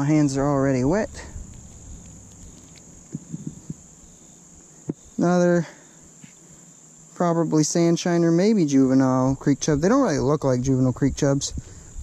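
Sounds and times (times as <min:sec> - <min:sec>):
high-pitched insect chirring: 0:00.0 - 0:12.0
soft low thumps: 0:00.9 - 0:03.9.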